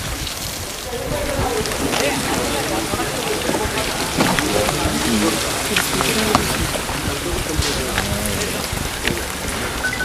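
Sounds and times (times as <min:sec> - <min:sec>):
rushing hiss of outdoor noise: 0:00.0 - 0:10.0
faint murmuring voices: 0:00.4 - 0:09.8.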